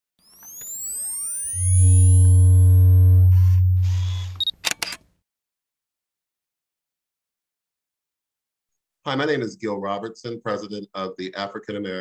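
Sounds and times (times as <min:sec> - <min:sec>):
high steady tones: 0:00.2 - 0:04.5
deep bass drone: 0:01.6 - 0:04.4
sharp clicks: 0:03.9 - 0:05.1.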